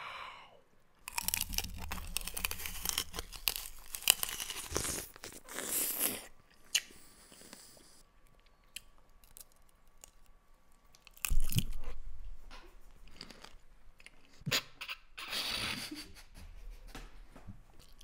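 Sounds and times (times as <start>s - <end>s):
loud crunching of fruit: 1.0s - 6.9s, 11.0s - 11.8s.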